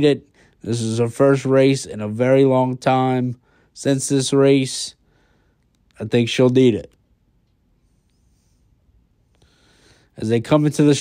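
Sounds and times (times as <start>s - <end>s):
soft breath: 3.4s - 3.8s, 5.0s - 5.8s, 7.8s - 10.2s.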